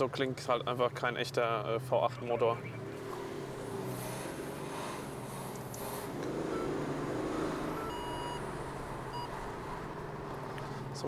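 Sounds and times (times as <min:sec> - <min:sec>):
car engine drone: 0:00.0 - 0:11.0
short electronic beeps: 0:07.8 - 0:08.4.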